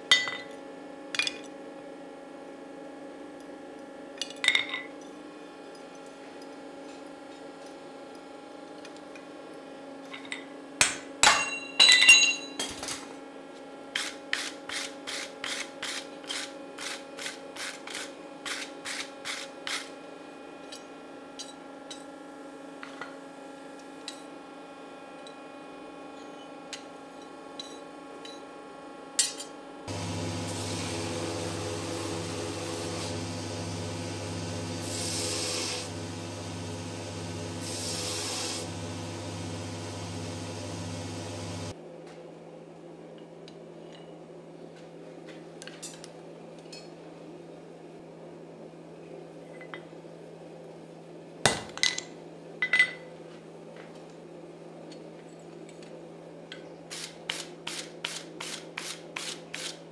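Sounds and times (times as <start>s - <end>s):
hammer striking steel on anvil: 10.8s - 12.6s
steady low hum: 29.7s - 41.8s.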